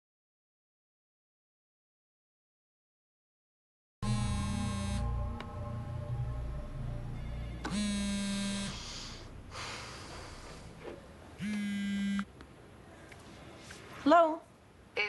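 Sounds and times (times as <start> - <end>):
smartphone vibrating: 4.0 - 5.2, 7.6 - 9.3, 11.4 - 12.3
low background music: 4.0 - 10.8.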